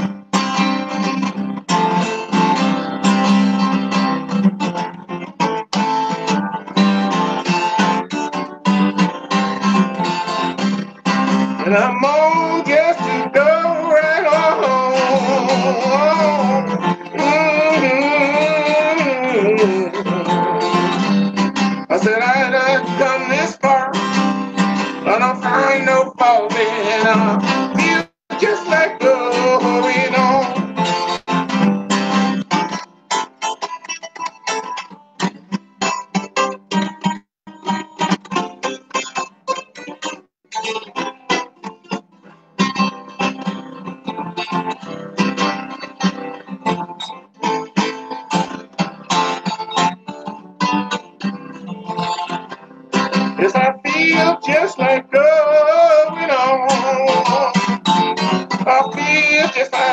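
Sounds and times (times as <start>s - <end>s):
fingerpicked acoustic guitar: 0.0s - 59.9s.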